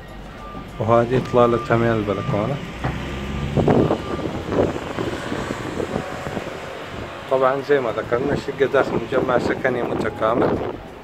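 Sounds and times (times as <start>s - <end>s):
low engine rumble: 0.0s - 11.0s
wind on microphone: 2.2s - 11.0s.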